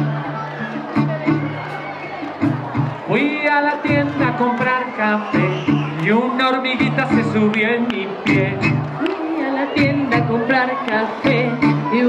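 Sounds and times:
acoustic guitar strumming: 0:00.0 - 0:12.0
crowd voices: 0:00.0 - 0:12.0.

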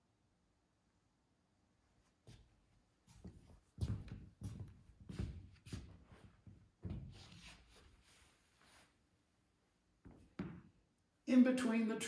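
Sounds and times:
soft footsteps on stage floor: 0:02.2 - 0:08.2.

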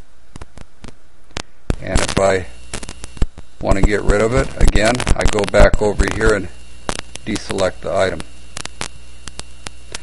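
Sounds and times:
electrical mains hum: 0:00.0 - 0:10.0
sharp clicks: 0:00.3 - 0:10.0.

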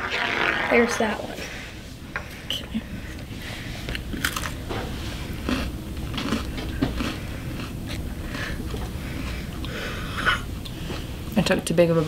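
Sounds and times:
cookie crunching while chewed: 0:04.0 - 0:04.6, 0:05.4 - 0:09.8.

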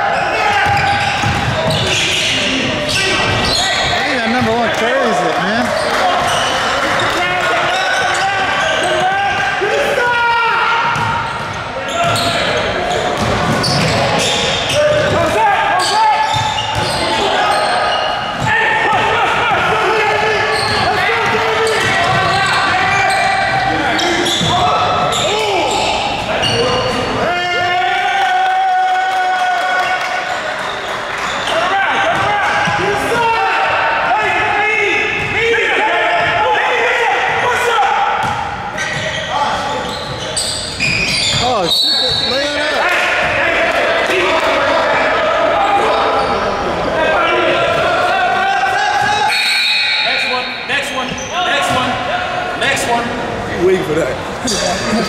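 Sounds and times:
players' voices and calls: 0:00.0 - 0:55.0
basketball bouncing on court: 0:00.6 - 0:02.1, 0:10.8 - 0:14.0, 0:38.2 - 0:39.2.

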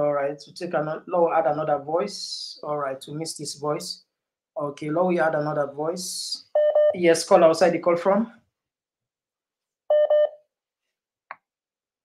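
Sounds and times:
electronic beeps: 0:09.9 - 0:10.4.

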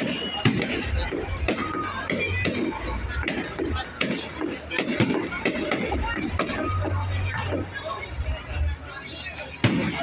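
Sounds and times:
firework bang: 0:09.6 - 0:10.0.

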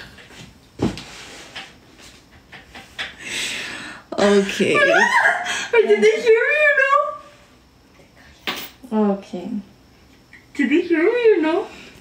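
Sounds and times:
woman laughing breathily: 0:04.9 - 0:05.8.

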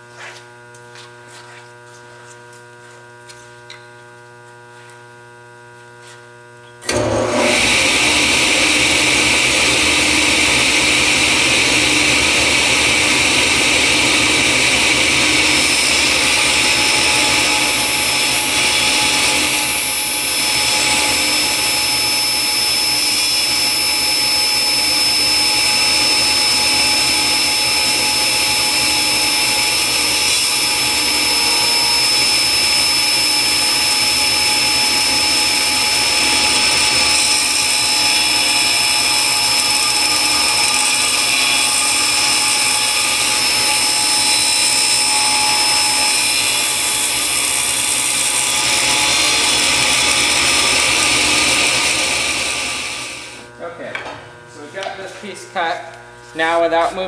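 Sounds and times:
table saw cutting wood: 0:06.8 - 0:53.5.

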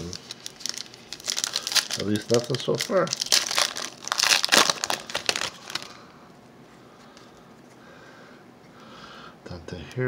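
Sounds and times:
foil wrapper crinkling: 0:00.0 - 0:06.0.

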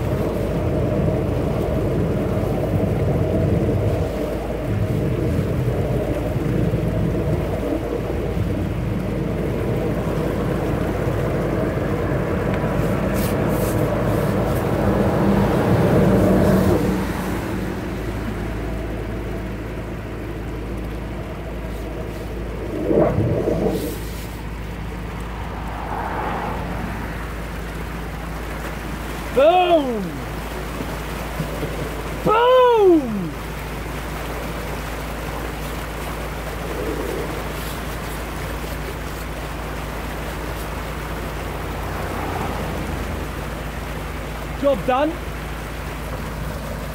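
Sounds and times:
drain jetting machine running: 0:00.0 - 0:46.9
water rushing: 0:00.0 - 0:46.9
car passing: 0:08.0 - 0:33.5, 0:39.5 - 0:46.6.

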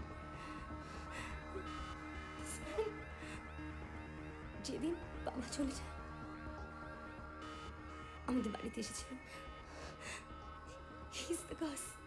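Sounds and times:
film music: 0:00.0 - 0:12.0.

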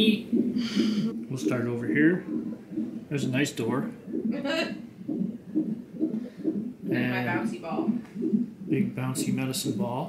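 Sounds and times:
fetal heartbeat monitor pulse: 0:00.0 - 0:10.0.

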